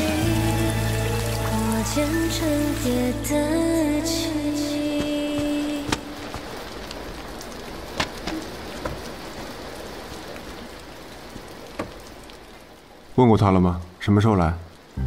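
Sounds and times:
steady rain falling: 0:00.0 - 0:15.0
sharp raindrop ticks: 0:04.7 - 0:15.0.

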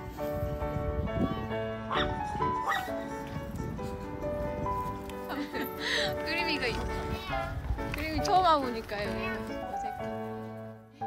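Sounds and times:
dog yelping: 0:01.9 - 0:03.0.

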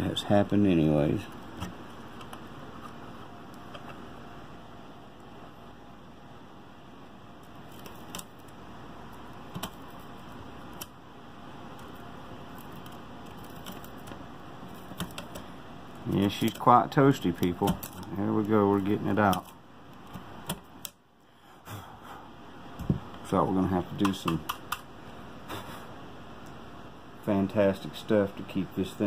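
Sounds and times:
faint background noise: 0:00.0 - 0:29.0.

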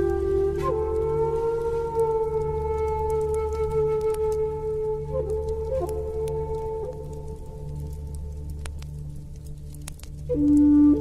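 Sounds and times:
flute holding long note: 0:00.0 - 0:08.7, 0:10.1 - 0:11.0.

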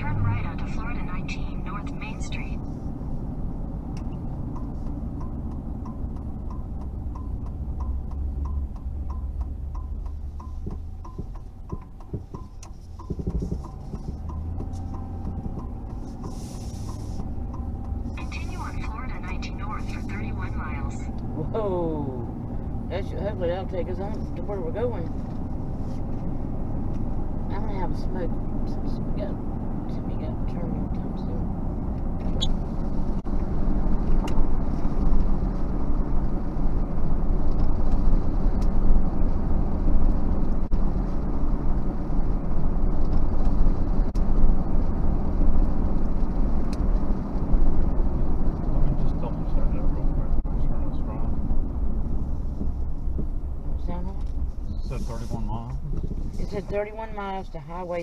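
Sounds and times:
car road and engine rumble: 0:00.0 - 0:58.0.

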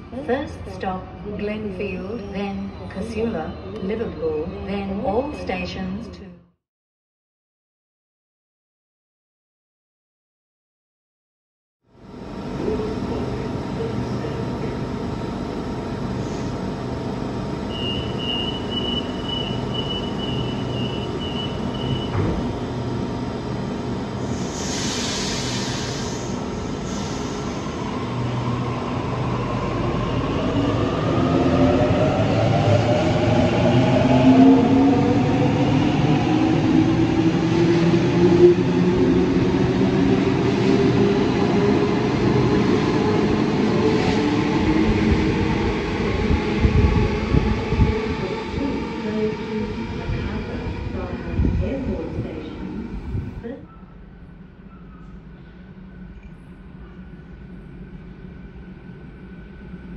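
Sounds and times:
train motor whine: 0:15.8 - 0:27.8
train wheels rumbling knocks: 0:22.0 - 0:22.6.

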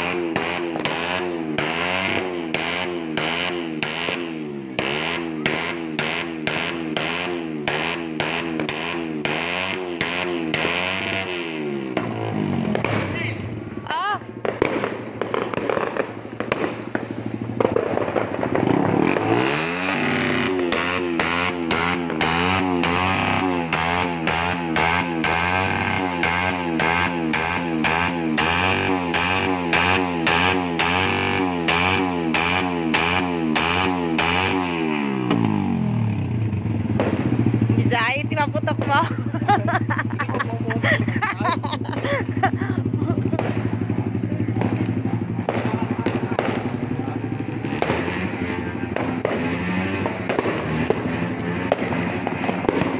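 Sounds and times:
fireworks crackling pops: 0:00.0 - 0:52.9
motorcycle engine revving and idling: 0:00.0 - 0:52.9.

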